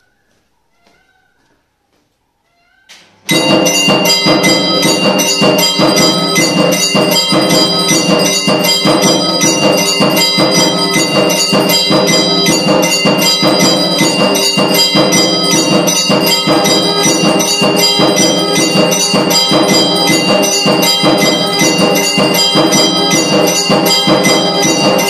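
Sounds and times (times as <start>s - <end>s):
temple bells ringing: 3.3s - 25.0s.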